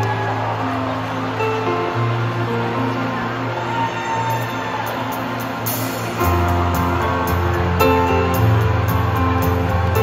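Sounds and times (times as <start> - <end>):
live rock band playing: 5.2 - 10.0.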